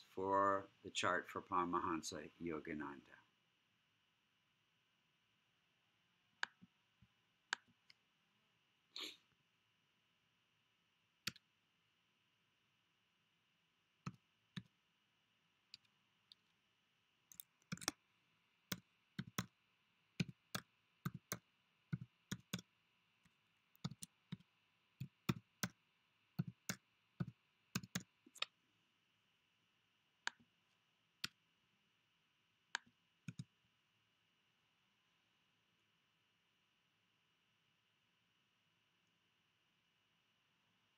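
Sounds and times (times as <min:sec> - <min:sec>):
computer keyboard keystrokes: 0:17.3 - 0:18.0, 0:18.7 - 0:19.5, 0:20.2 - 0:21.4, 0:22.0 - 0:22.6, 0:23.8 - 0:24.4, 0:26.4 - 0:28.0.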